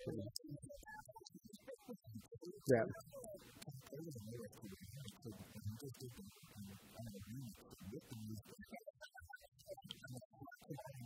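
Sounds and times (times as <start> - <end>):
faint voices: 0.0 - 0.4
surrounding conversation: 0.0 - 1.0, 2.5 - 8.7.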